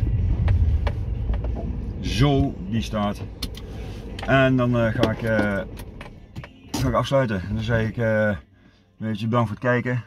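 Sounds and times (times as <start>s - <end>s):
car engine low rumble: 0.0s - 10.0s.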